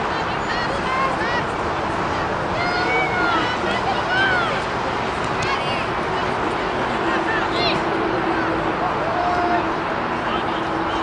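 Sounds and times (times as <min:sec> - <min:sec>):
steady rushing noise: 0:00.0 - 0:11.0.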